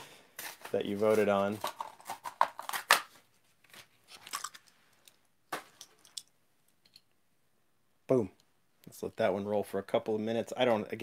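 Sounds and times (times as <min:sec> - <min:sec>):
plastic package crinkling: 0:00.4 - 0:04.7.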